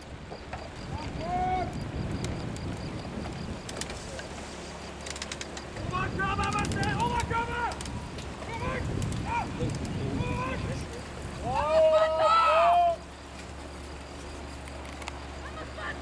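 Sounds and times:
voices shouting drawn-out calls: 0.6s - 14.6s.

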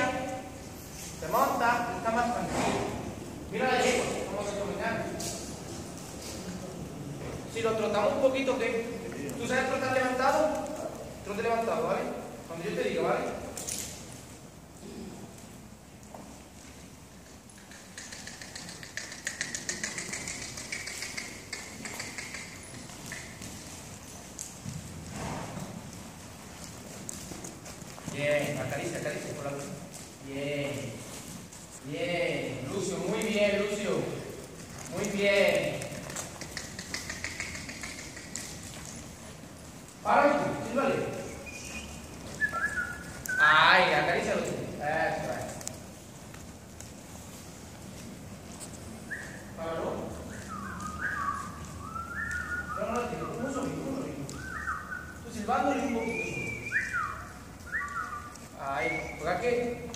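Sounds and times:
horse hoofbeats on sand: 18.1s - 31.8s
held whistle: 41.3s - 43.5s, 49.1s - 49.6s, 50.2s - 53.4s, 54.3s - 59.4s.

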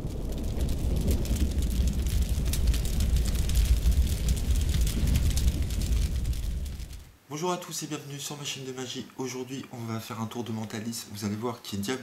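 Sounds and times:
fire crackling: 0.0s - 12.0s.

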